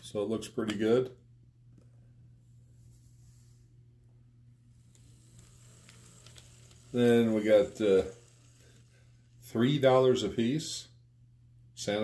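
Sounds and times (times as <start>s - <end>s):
model locomotive running hum: 4.8s - 10.8s.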